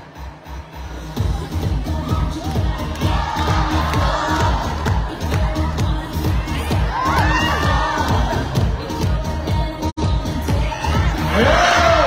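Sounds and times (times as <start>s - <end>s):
crowd cheering and shouting: 0.0s - 9.5s, 10.4s - 12.0s
loud dance music: 0.0s - 12.0s.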